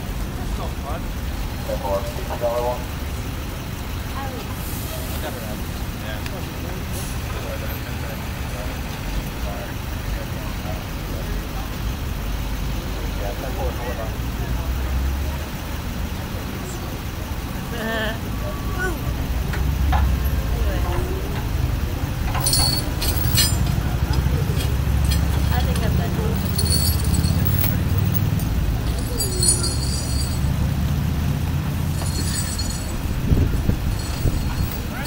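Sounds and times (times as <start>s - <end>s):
faint voices: 0.0s - 35.0s
street traffic rumbling: 0.0s - 35.0s
metal chain clinking: 22.2s - 30.8s, 31.8s - 35.0s.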